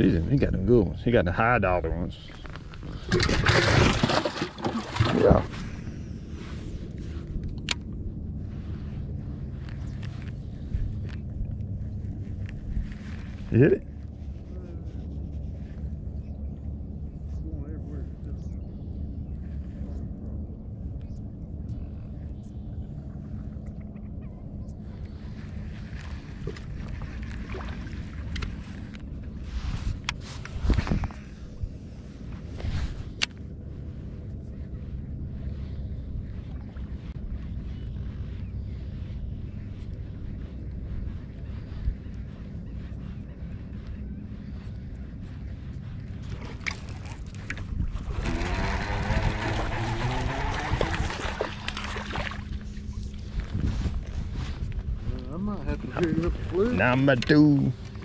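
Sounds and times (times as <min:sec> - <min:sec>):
fish splashing in water: 0:46.6 - 0:52.8
electric motor humming: 0:48.0 - 0:52.1.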